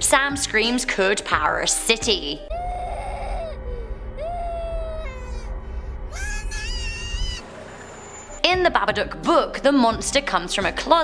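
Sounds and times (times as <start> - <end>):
low rumble: 2.4 - 8.5
boy screaming: 2.5 - 5.5, 6.1 - 7.4.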